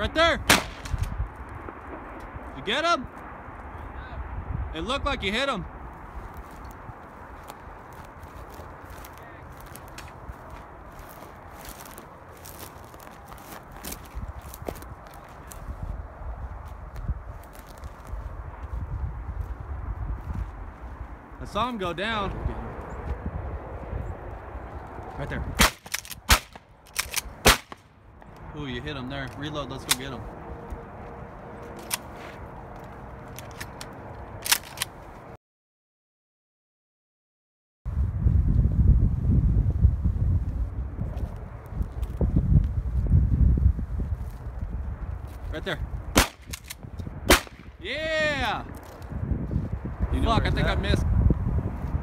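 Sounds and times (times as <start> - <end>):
footsteps through dry brush: 5.9 - 21.4, 30.0 - 34.3, 40.5 - 47.7, 48.4 - 49.9
branches brushing past: 6.2 - 16.0, 29.3 - 35.1
twigs crackling and snapping: 7.4 - 15.7, 16.9 - 18.2, 46.2 - 47.8, 48.7 - 49.2.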